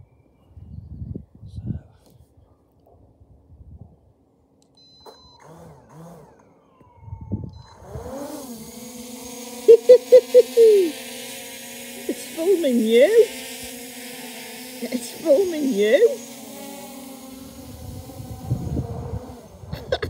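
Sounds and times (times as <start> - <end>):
drone propeller whir: 5.2 - 20.0
short loud pulses: 5.4 - 20.0.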